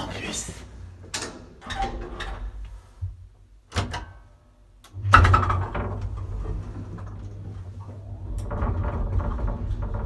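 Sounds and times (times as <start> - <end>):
elevator low hum: 4.9 - 10.0
elevator starting clatter: 5.0 - 10.0.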